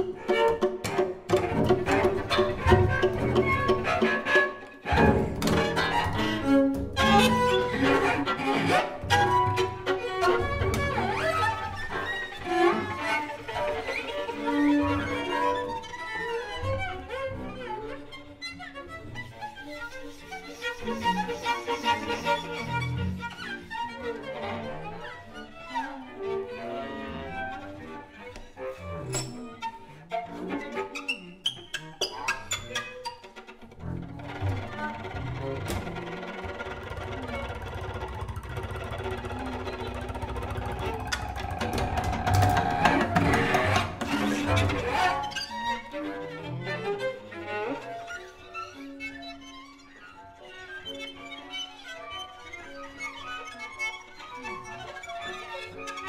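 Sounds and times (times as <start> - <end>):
bowed string ensemble improvising: 0.0 - 56.0
low string drone: 33.7 - 45.2.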